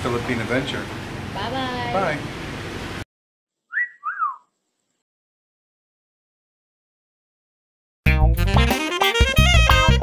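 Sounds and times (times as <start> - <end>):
two-part whistle: 3.7 - 4.5.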